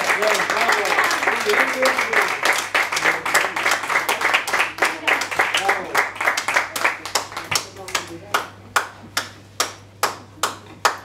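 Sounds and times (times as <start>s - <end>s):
hands clapping a steady beat: 0.0s - 11.0s.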